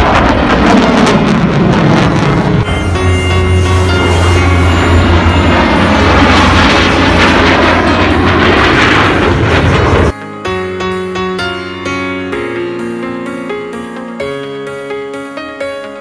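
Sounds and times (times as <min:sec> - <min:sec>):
jet roar: 0:00.0 - 0:10.2
soft piano music: 0:01.9 - 0:16.0.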